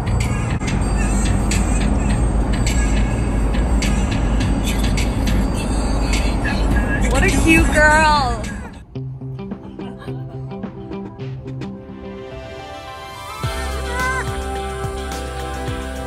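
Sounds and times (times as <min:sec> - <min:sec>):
vehicle road rumble: 0:00.0 - 0:12.1.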